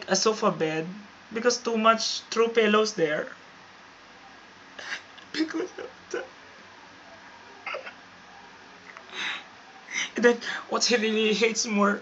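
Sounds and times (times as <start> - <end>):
person stifled laugh: 4.8 - 6.3, 7.6 - 8.0.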